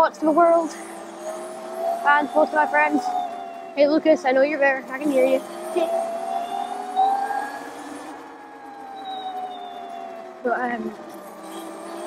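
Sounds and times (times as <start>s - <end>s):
electric motor whining: 0.2s - 12.0s.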